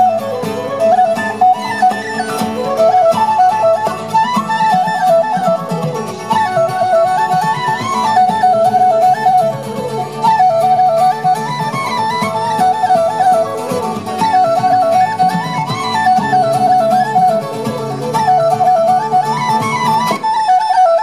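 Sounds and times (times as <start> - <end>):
acoustic guitar: 0.0 - 21.0
plucked strings: 0.0 - 21.0
woodwind melody: 0.0 - 21.0.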